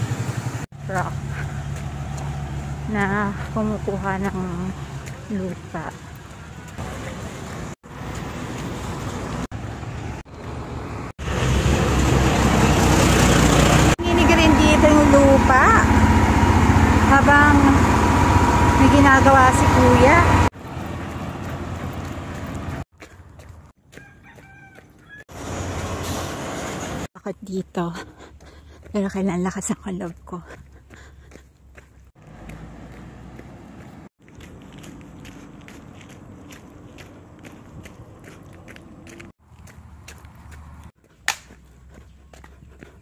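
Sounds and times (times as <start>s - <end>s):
road roller engine rumbling: 0.0s - 22.9s
road traffic noise: 0.0s - 43.0s.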